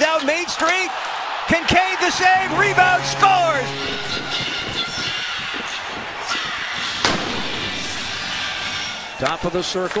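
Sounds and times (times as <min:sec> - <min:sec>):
arena crowd cheering: 0:00.0 - 0:10.0.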